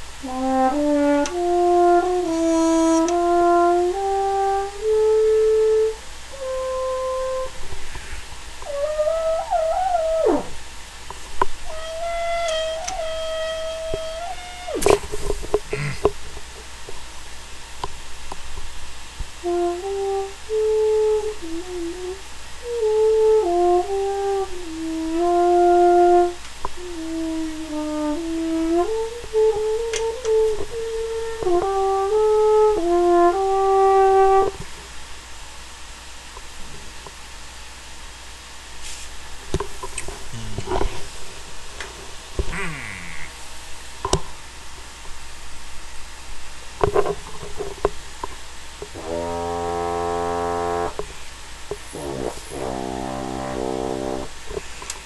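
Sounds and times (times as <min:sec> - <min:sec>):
french horn playing: 0:00.2 - 0:10.7, 0:11.6 - 0:15.1, 0:19.4 - 0:34.6, 0:48.9 - 0:51.0, 0:51.9 - 0:54.5.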